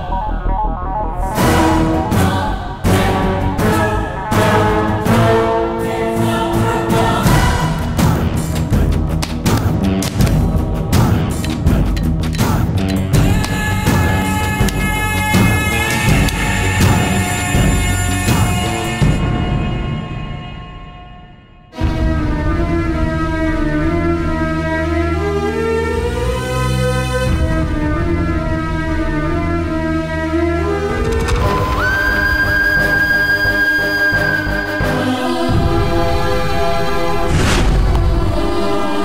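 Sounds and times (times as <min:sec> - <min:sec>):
dramatic sustained orchestral tones: 0:00.0 - 0:07.8, 0:31.5 - 0:39.0
dramatic choir music: 0:00.0 - 0:39.0.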